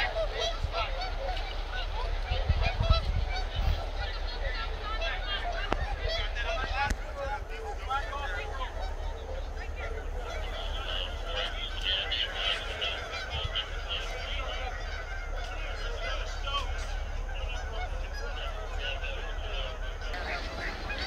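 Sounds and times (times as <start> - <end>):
geese honking: 0.0 - 21.0.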